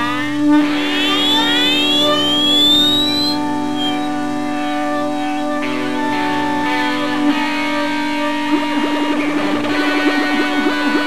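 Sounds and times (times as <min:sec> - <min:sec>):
low electronic drone: 0:00.0 - 0:06.4
electronic tones gliding upward: 0:00.8 - 0:05.5.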